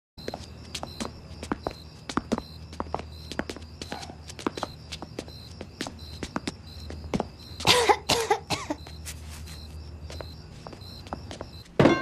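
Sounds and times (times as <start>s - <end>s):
faint high chirping: 0.2s - 11.8s
hard shoes tapping on concrete: 0.2s - 12.0s
cough-like vocal sound: 7.6s - 8.8s
loud thump: 11.8s - 12.0s.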